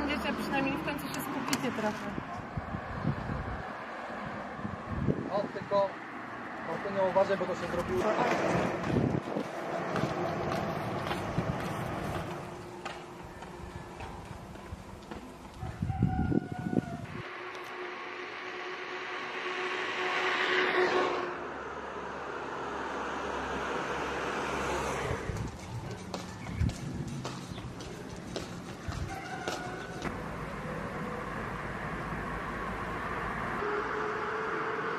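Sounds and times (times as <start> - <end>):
vehicle passing: 0.0 - 15.6, 17.0 - 34.9
outdoor background noise: 0.0 - 34.9.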